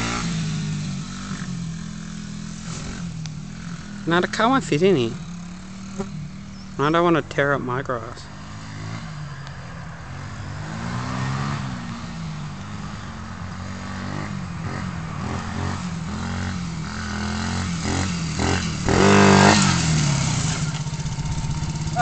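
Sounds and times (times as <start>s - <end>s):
pit bike engine revving: 0.0s - 9.4s, 10.1s - 22.0s.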